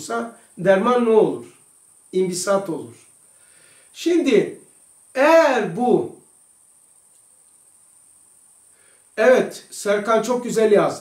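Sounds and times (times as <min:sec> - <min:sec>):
faint high-pitched whine: 0:00.0 - 0:11.0
man's voice: 0:05.2 - 0:06.2.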